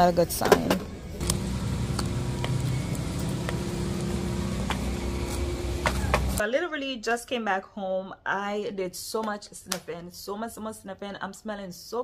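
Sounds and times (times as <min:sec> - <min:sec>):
engine running with low hum: 0:00.9 - 0:06.4.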